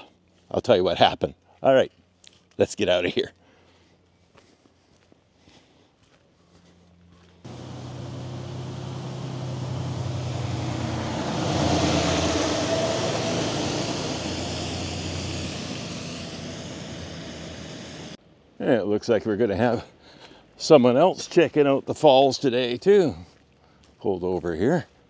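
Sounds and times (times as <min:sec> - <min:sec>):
truck driving past: 0:07.5 - 0:18.2.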